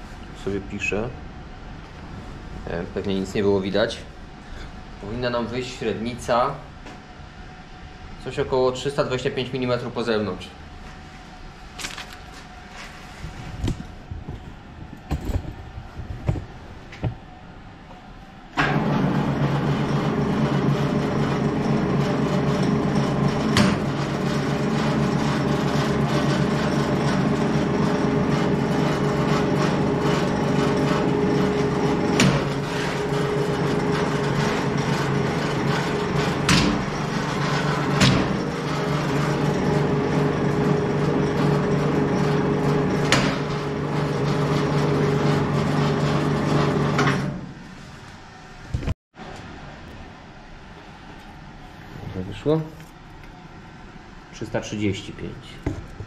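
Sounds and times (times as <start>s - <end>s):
bending machine humming: 0.0s - 56.0s.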